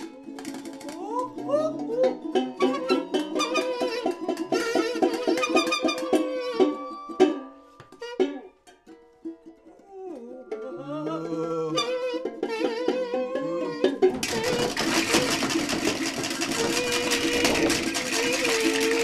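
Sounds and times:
plucked string notes: 0:00.0 - 0:19.0.

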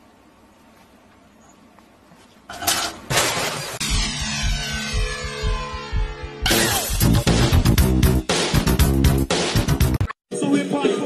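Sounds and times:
loud crash: 0:02.6 - 0:07.2
music with steady beat: 0:03.8 - 0:10.1.

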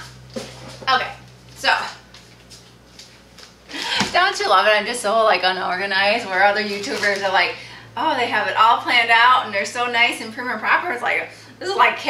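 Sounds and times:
low steady hum: 0:00.0 - 0:12.0
plastic bag rustling: 0:06.4 - 0:07.6.

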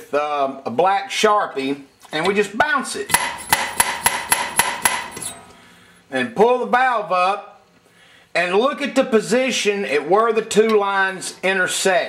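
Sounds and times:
valve tapping metal on metal: 0:03.1 - 0:05.5.

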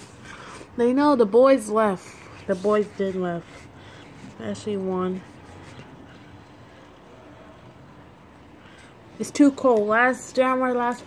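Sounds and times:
faint city hum: 0:00.0 - 0:11.0.

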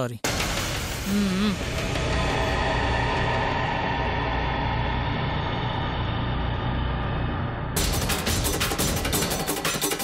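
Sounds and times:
low rumbling drone: 0:00.3 - 0:08.2.

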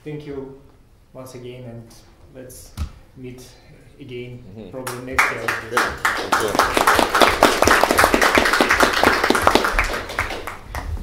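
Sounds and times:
audience applauding: 0:04.9 - 0:11.0.

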